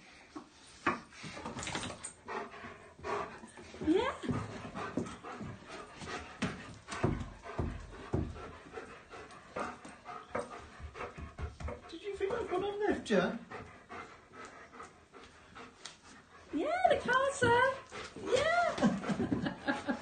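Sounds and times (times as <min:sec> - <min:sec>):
dog panting fast: 0:01.0 - 0:20.0.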